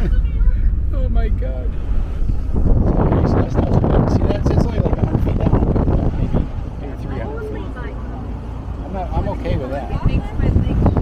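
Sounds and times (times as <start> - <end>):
road noise: 0.0 - 11.0
wind buffeting microphone: 0.0 - 11.0.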